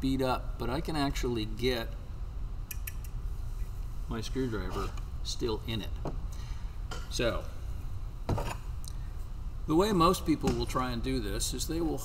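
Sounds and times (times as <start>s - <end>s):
steady low hum: 0.0s - 12.0s
small sharp clicks: 2.7s - 3.2s.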